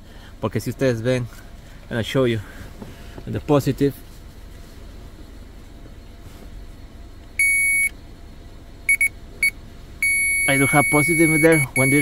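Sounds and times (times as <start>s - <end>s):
circuit tester beeping: 7.4s - 8.0s, 8.9s - 12.0s.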